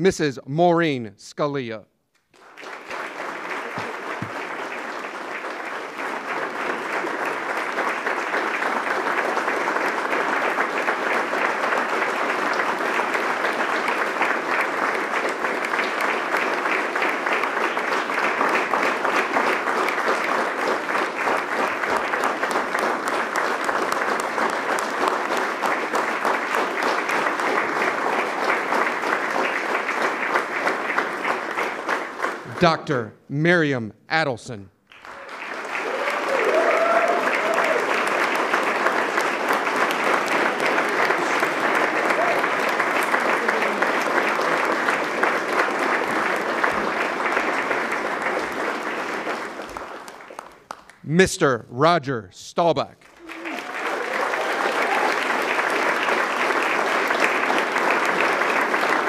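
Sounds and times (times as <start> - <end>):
audience applauding: 2.3 - 33.0, 34.9 - 51.9, 52.8 - 59.0.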